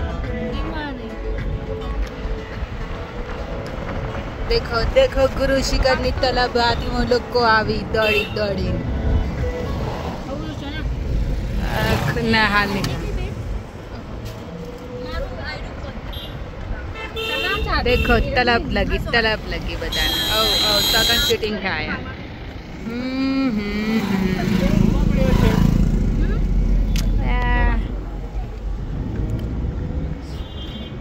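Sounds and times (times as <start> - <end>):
vehicle road noise rumble: 0.0 - 31.0
vehicle passing close: 22.2 - 27.2.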